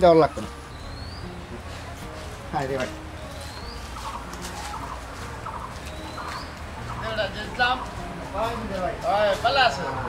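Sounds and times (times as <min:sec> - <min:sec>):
birds calling: 0:00.0 - 0:10.0.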